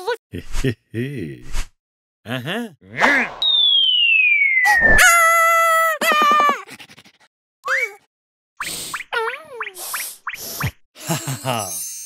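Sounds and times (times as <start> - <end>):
cartoon whistle falling in pitch: 3.0 - 5.6.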